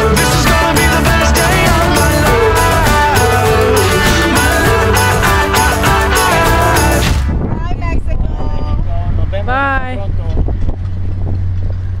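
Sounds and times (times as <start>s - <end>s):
wind buffeting microphone: 7.1s - 12.0s.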